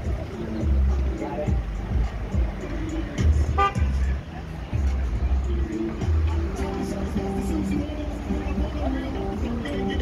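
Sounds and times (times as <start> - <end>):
music with heavy bass: 0.0 - 10.0
street traffic: 0.0 - 10.0
voices: 0.0 - 10.0
car horn toot: 3.5 - 4.1.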